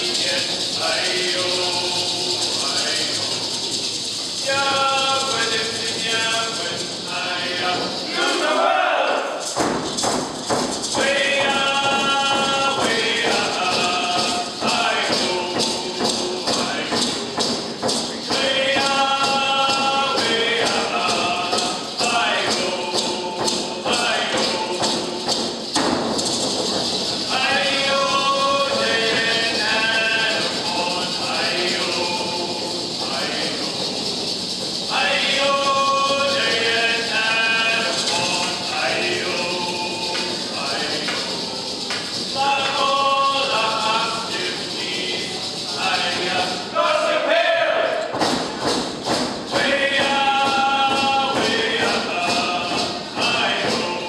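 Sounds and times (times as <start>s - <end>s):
voices singing: 0.0s - 9.6s, 10.8s - 54.0s
frame drums beating: 0.0s - 54.0s.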